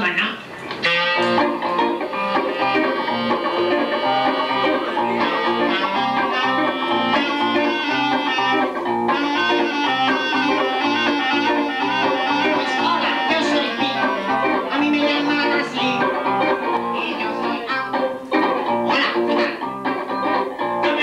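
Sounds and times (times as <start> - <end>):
electric guitar: 0.4 - 21.0
clarinet melody: 0.8 - 21.0.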